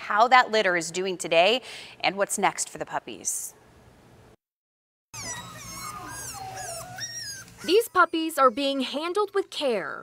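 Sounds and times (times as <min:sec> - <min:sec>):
puppies whimpering and whining: 0:05.1 - 0:09.2.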